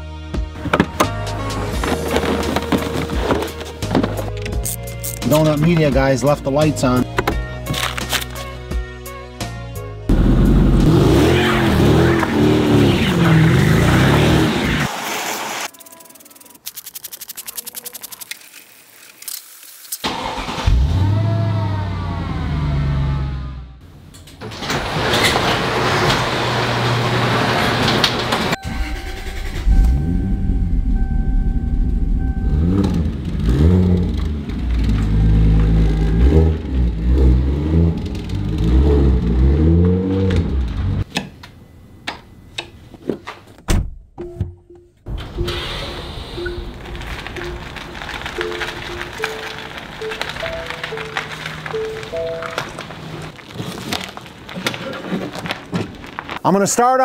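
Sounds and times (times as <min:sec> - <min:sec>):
background music: 0:00.0 - 0:12.0
car engines starting and revving: 0:10.1 - 0:15.7, 0:20.0 - 0:41.2, 0:45.0 - 0:53.4.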